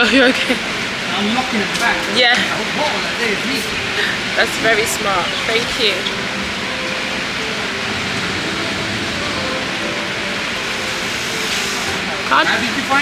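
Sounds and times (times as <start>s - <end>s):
steady rushing noise: 5.8s - 12.4s.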